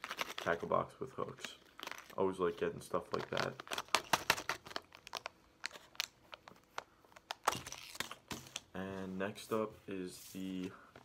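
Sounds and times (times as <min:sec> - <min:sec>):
plastic packet crinkling: 0:00.0 - 0:00.8, 0:01.4 - 0:08.2.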